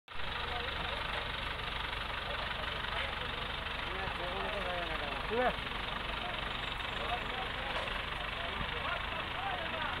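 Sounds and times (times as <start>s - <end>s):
crane engine running: 0.1s - 10.0s
people talking and calling out: 0.2s - 10.0s.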